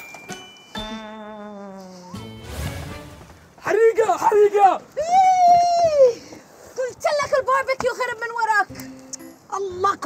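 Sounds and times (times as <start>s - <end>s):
grill flame whoosh: 2.3s - 3.6s.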